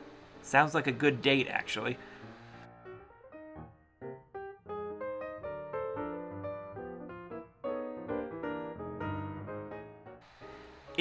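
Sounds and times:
piano-like keyboard music: 0.0 - 11.0.

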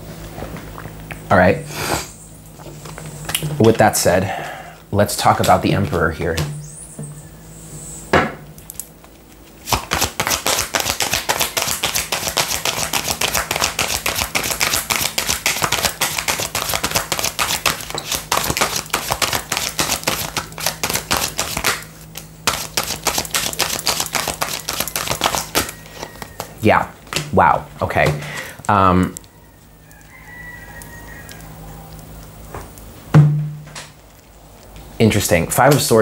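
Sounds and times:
cards being shuffled: 9.0 - 27.4.

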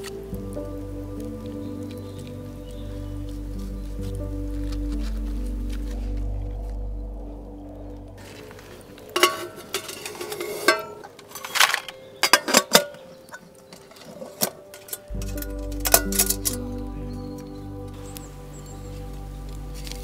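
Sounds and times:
background music with low tones: 0.0 - 20.0
metal cookware clinking: 9.2 - 13.0, 14.3 - 16.6.

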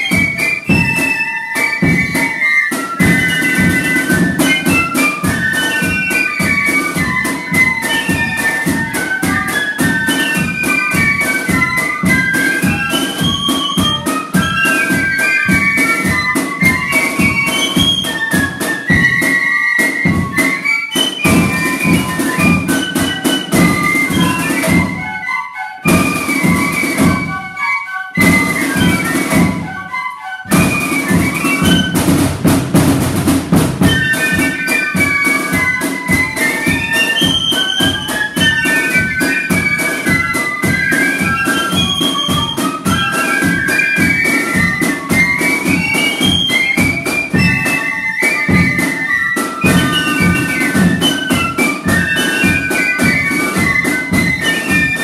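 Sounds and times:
flutes and piccolo melody: 0.0 - 32.5, 33.5 - 55.0
snare drums: 0.0 - 55.0.

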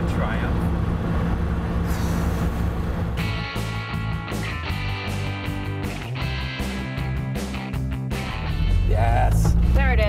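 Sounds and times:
car engine cruising: 0.0 - 4.0, 6.9 - 10.0.

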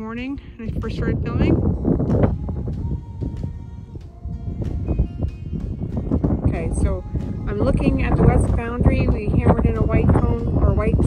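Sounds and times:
wind rumble on microphone: 0.0 - 11.0
music with held notes: 1.6 - 11.0.

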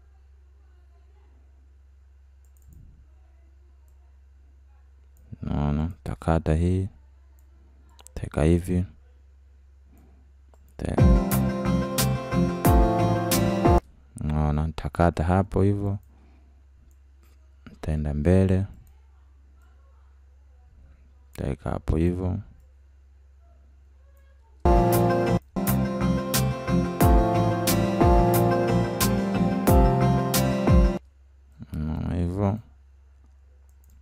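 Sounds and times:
low electrical hum: 0.0 - 30.3, 31.0 - 34.0
computer mouse clicks: 2.4 - 2.8, 33.2 - 34.0.

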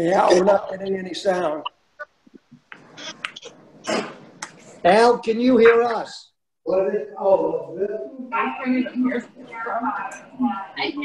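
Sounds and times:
microphone clicks: 1.6 - 4.6.

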